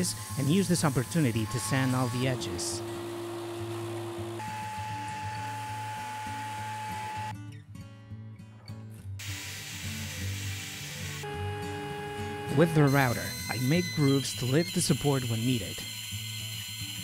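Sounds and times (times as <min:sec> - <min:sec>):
belt sander running: 0:00.0 - 0:07.3, 0:10.6 - 0:17.0
background music: 0:10.0 - 0:14.8.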